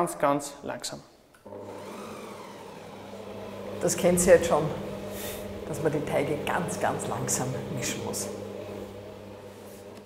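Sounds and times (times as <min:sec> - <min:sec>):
stand mixer motor humming: 0:01.4 - 0:10.0.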